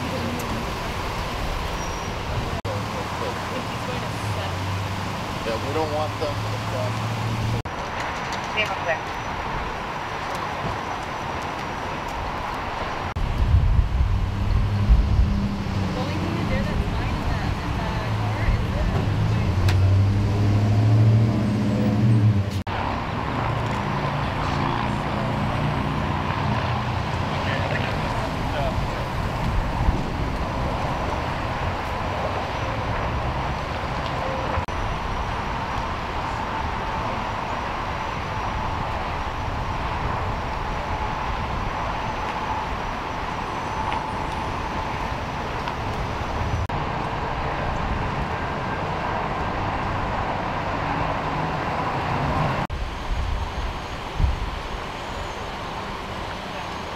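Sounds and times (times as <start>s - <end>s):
steady traffic noise: 0.0s - 56.9s.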